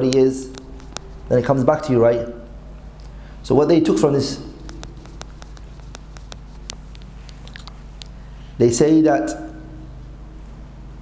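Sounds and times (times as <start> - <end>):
small clicks near microphone: 0.0 - 1.2, 4.4 - 8.2
low steady hum: 0.0 - 11.0.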